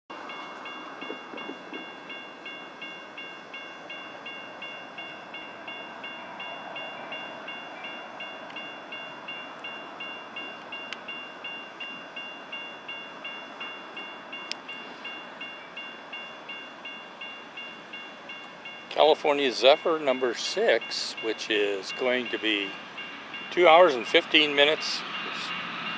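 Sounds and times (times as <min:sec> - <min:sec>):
crossing warning bell ringing: 0:00.1 - 0:25.9.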